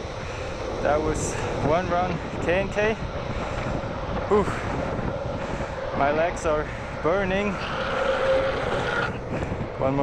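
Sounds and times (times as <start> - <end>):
wind rush on microphone: 0.0 - 10.0.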